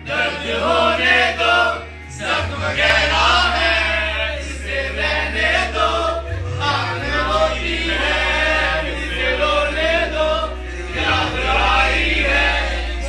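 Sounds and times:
bass line: 0.0 - 13.0
men singing in chorus: 0.0 - 13.0.

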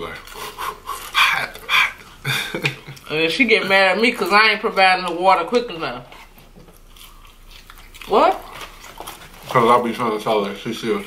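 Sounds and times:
faint chewing of crunchy food: 0.0 - 3.1, 6.0 - 11.0.

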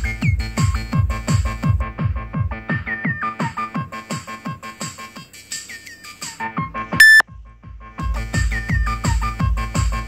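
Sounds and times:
kick drum: 0.0 - 2.9, 7.2 - 10.0
falling synth blips: 7.0 - 7.2
loud high-pitched tone: 7.0 - 7.2.

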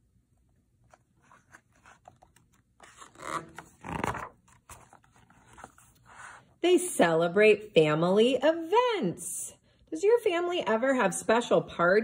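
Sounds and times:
page turning: 0.7 - 6.4.

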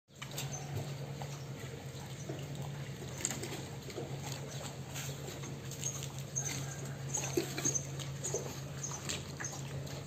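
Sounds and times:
low mechanical hum: 0.1 - 10.0.

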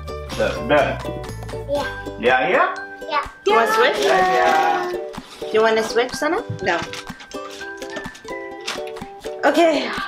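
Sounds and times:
light background melody: 0.0 - 10.0.

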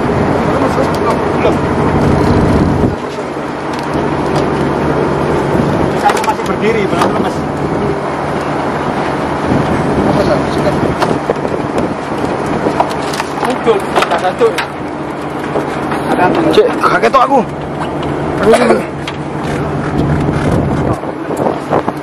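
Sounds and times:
boat engine running: 0.0 - 22.0
voices: 0.3 - 20.0.

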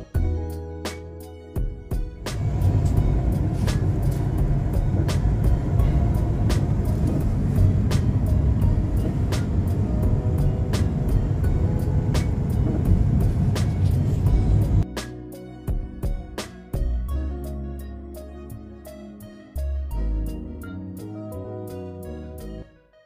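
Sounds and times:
faint background music: 0.0 - 23.0
car cabin road rumble: 2.2 - 14.9.

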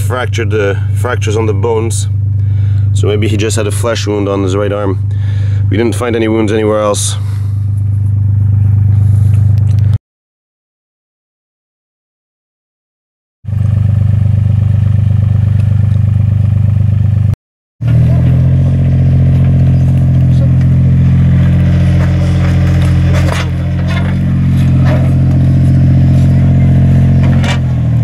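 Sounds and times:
excavator diesel engine running: 0.0 - 10.0, 13.5 - 28.0.

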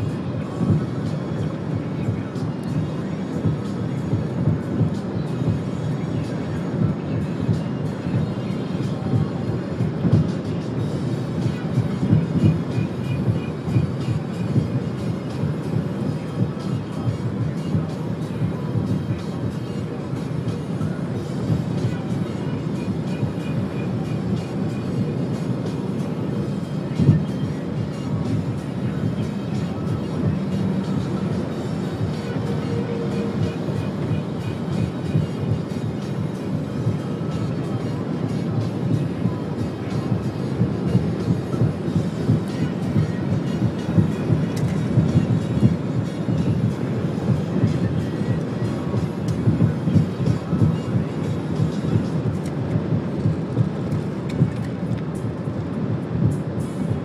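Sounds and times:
music: 0.0 - 57.0
wind and road noise: 0.0 - 57.0.

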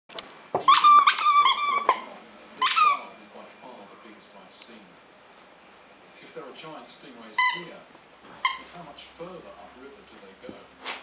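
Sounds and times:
squeaky toy squeaking: 0.7 - 3.1, 7.4 - 7.7, 8.4 - 8.7.

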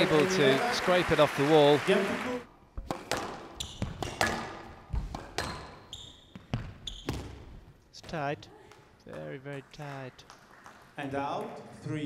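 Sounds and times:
squash ball knocks: 2.8 - 5.8
shoes squeaking on wooden floor: 3.5 - 7.8.

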